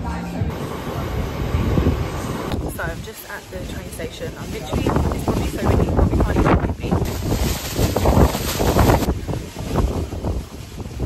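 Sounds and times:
wind buffeting microphone: 0.5s - 11.0s.

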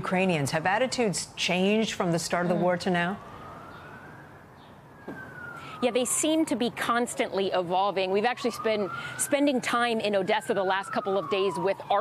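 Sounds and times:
siren wailing: 1.7s - 12.0s.

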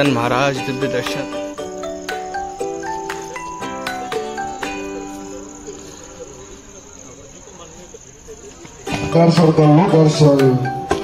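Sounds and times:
music with stepped melody: 0.0s - 6.0s, 8.9s - 11.0s
crickets chirring: 0.0s - 11.0s
faint distant voices: 0.0s - 11.0s.

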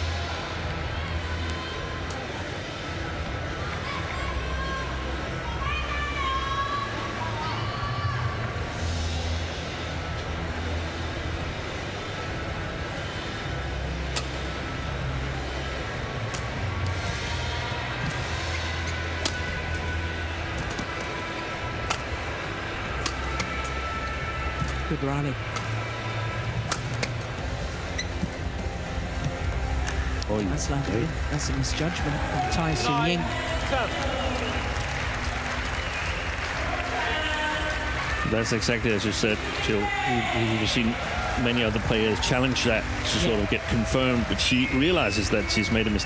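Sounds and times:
arena crowd murmur: 0.0s - 46.0s
rackets striking shuttlecock: 14.1s - 14.4s, 18.0s - 19.8s, 21.8s - 22.3s, 22.9s - 23.8s, 26.6s - 27.3s.

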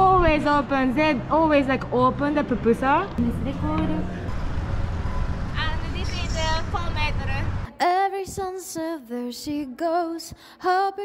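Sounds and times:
vehicle rumble: 0.0s - 7.7s.

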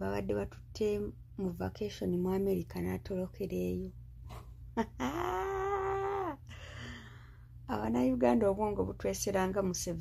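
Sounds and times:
high whining vocal sound: 5.0s - 6.5s.

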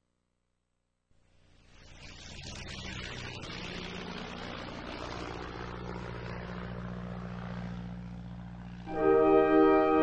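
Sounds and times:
propeller airplane engine drone: 1.2s - 10.0s.

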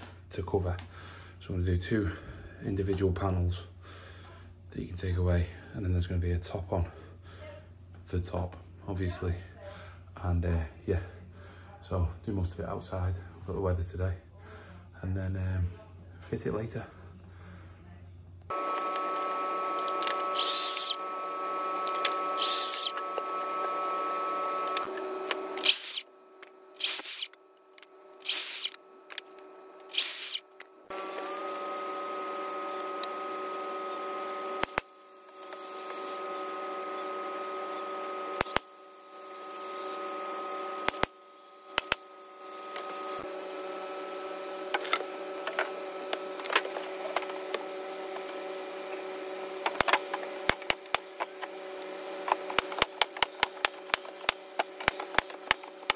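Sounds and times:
power tool cutting: 18.5s - 26.1s, 26.8s - 27.4s, 28.2s - 28.8s, 29.9s - 38.6s
power tool motor whine: 18.5s - 27.4s, 28.2s - 55.9s.

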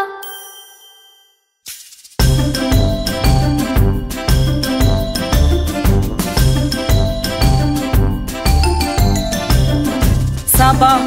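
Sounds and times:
jingle chime ringing: 0.0s - 1.6s, 2.2s - 11.0s.

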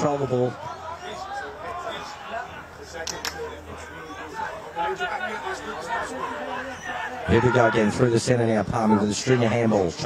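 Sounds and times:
people calling out and chattering: 0.0s - 10.0s.

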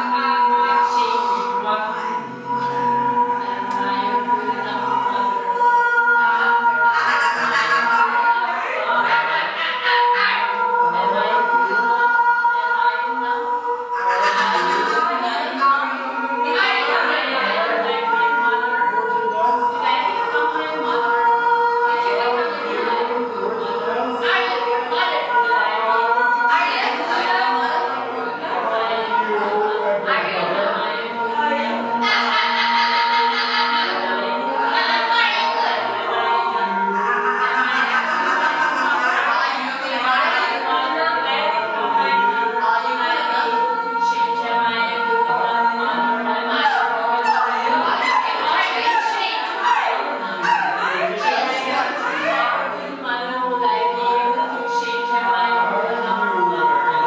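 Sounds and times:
choir holding drone notes: 0.0s - 57.0s.

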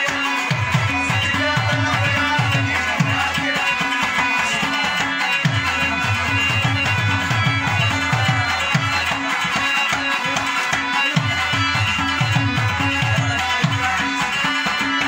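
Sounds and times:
keyboard melody: 0.0s - 15.0s
tabla and hand drums: 0.0s - 15.0s.

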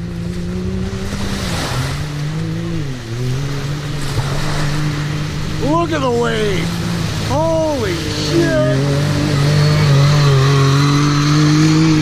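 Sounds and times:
off-road vehicle engine: 0.0s - 12.0s
water splashing: 0.0s - 12.0s.

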